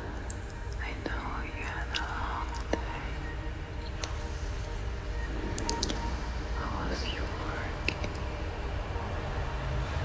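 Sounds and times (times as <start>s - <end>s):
experimental electronic music: 0.0s - 10.0s
low steady hum: 0.0s - 10.0s
person whispering: 0.8s - 3.2s, 6.6s - 8.1s
sharp clicks: 5.5s - 6.0s.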